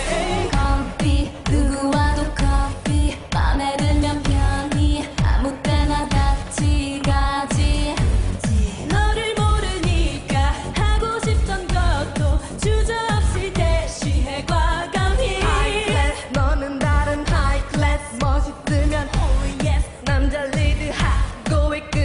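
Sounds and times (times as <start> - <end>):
deep kick drum: 0.0 - 22.0
heavy electronic beat: 0.0 - 22.0
woman singing: 0.0 - 22.0.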